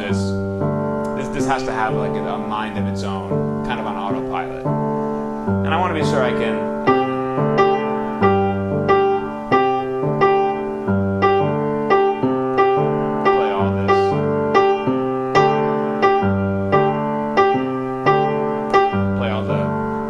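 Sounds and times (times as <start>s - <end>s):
grand piano jazz ostinato: 0.0s - 20.0s.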